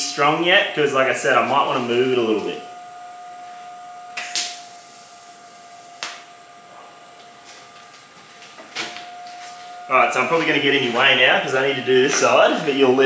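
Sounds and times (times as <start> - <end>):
faint steady hum: 0.0 - 13.0
welding arc: 4.2 - 6.3.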